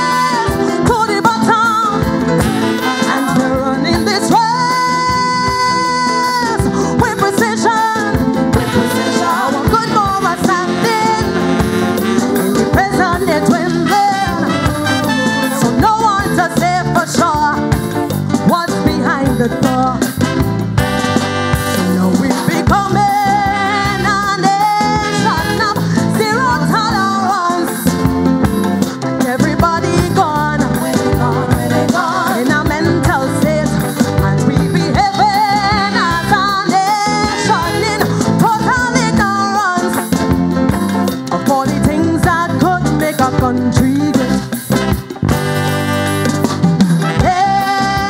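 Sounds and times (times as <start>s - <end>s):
woman singing: 0.0s - 20.6s, 21.7s - 28.3s, 29.0s - 44.8s, 47.0s - 48.0s
calypso band playing: 0.0s - 48.0s.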